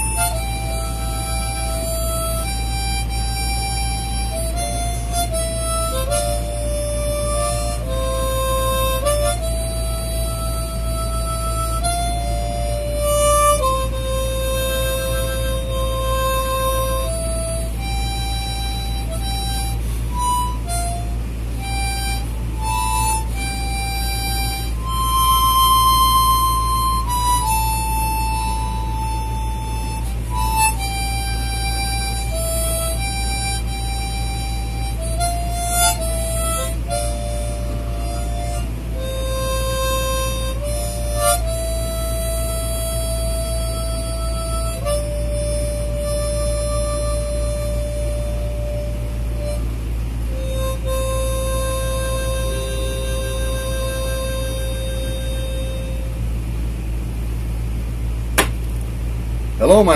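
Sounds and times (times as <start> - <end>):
harmonica melody: 0.0 - 58.5, 59.6 - 59.9
steady low hum: 0.0 - 59.9.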